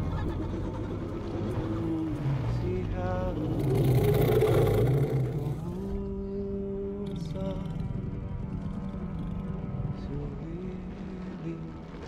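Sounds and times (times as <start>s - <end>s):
deep rumbling growl: 0.0s - 12.0s.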